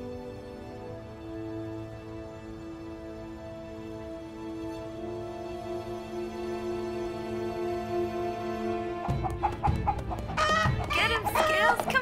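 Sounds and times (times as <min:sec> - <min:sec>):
chicken clucking and squawking: 0:08.9 - 0:12.0.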